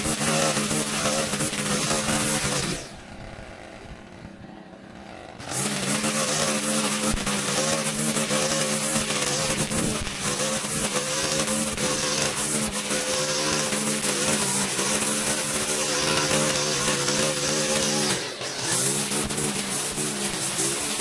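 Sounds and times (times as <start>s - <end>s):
string trimmer engine: 0.0s - 21.0s
trimmer cutting grass: 0.0s - 21.0s.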